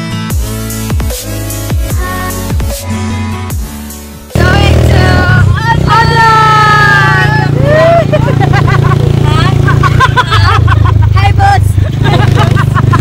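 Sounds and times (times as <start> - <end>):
vehicle engine rumble: 1.4 - 13.0
women laughing and shrieking: 6.3 - 13.0.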